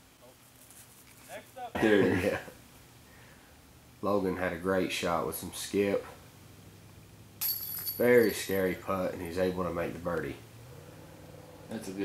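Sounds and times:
disc hitting metal chains: 7.4s - 8.7s.

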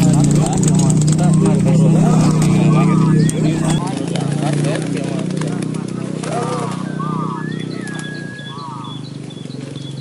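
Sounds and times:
people shouting and calling: 0.0s - 9.1s.

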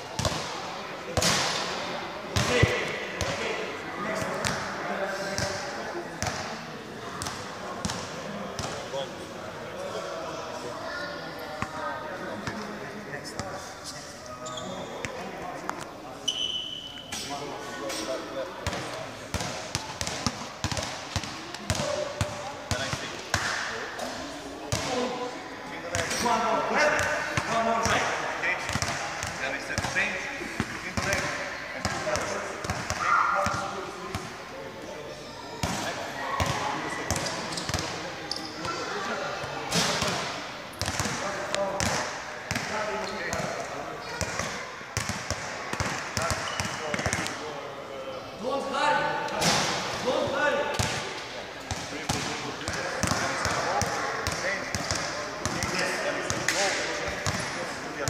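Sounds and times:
people talking: 0.0s - 58.0s
basketballs bouncing on floor: 0.2s - 0.5s, 18.6s - 23.6s, 28.7s - 30.0s, 40.8s - 43.5s, 44.2s - 47.4s, 51.7s - 57.5s.

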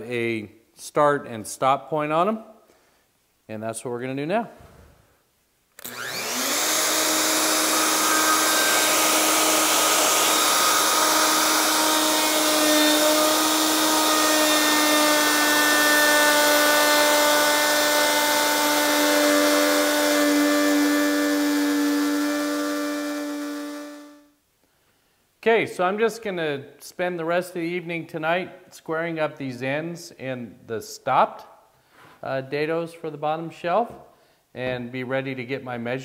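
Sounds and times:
router motor whine: 5.8s - 24.3s
dust extractor hiss: 5.9s - 14.6s.

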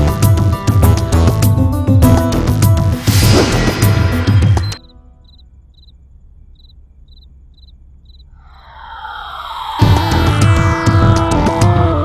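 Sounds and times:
crickets chirping: 4.2s - 10.2s.

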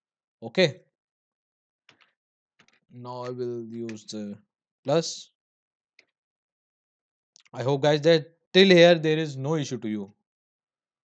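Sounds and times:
person speaking: 3.0s - 5.2s, 7.4s - 10.0s.

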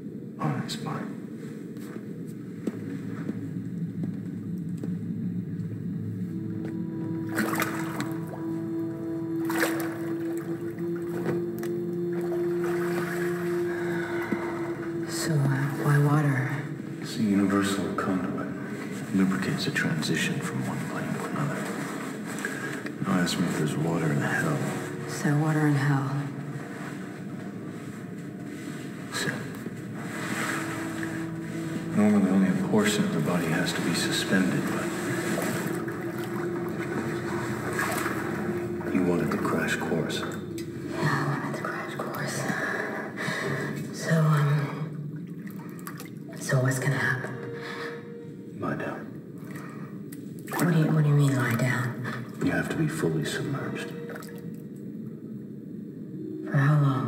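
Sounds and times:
low rushing noise: 0.0s - 44.0s
faint steady tone: 0.0s - 57.0s
small water sounds: 6.3s - 42.4s, 44.9s - 47.1s, 49.3s - 53.0s, 53.9s - 54.8s
bathwater moving and dripping: 6.3s - 44.0s, 45.0s - 47.1s, 49.4s - 55.0s.

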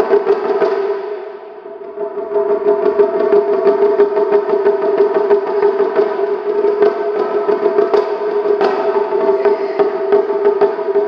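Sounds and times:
taiko drums: 0.0s - 11.0s.

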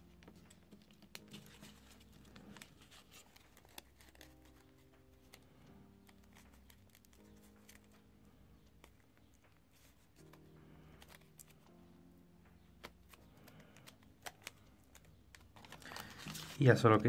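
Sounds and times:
faint background music: 0.0s - 17.0s
paper crinkling and clicking: 0.1s - 8.1s, 8.7s - 11.9s, 12.8s - 17.0s.

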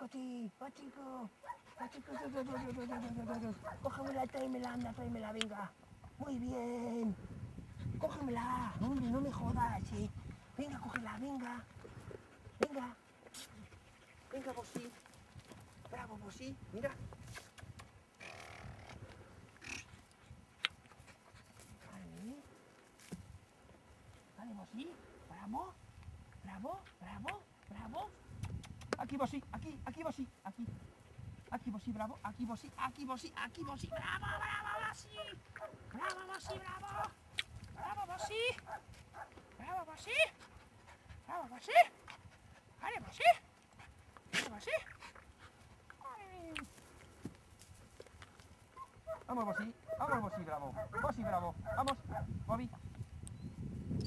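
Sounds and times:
dog panting and snuffling: 1.6s - 5.0s, 7.7s - 15.6s, 18.9s - 23.2s, 38.5s - 46.0s.

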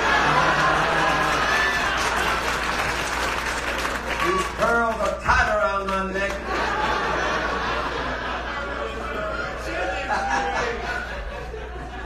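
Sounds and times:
audience applauding: 0.0s - 8.2s.

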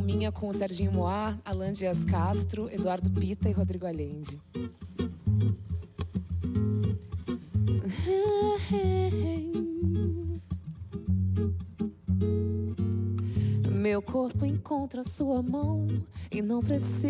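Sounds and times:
fingerpicked acoustic guitar: 0.0s - 17.0s.

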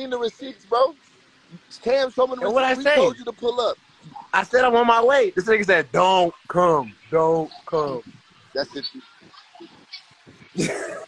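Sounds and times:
man laughing loudly: 10.6s - 11.0s.

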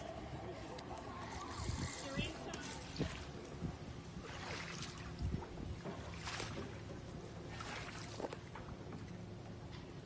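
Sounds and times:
oar splashing in water: 4.2s - 9.2s.

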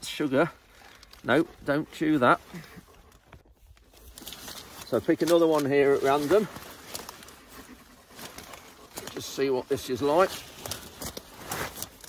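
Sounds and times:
digging fork scraping in soil: 3.8s - 12.0s.

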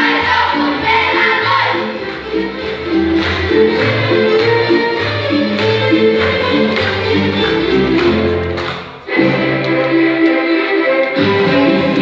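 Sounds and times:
lively folk dance music: 0.0s - 12.0s.

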